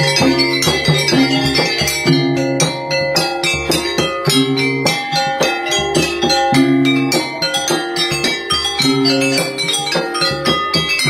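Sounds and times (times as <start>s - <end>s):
ringing percussion: 0.0s - 11.0s.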